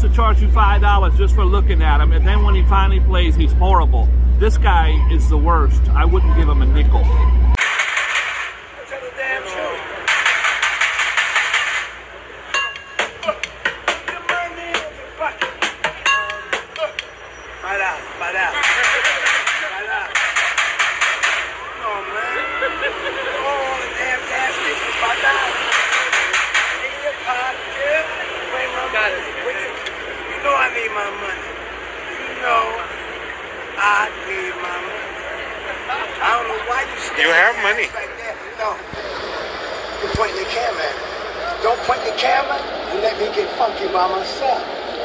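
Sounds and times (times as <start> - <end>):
person talking: 0.0 - 7.1.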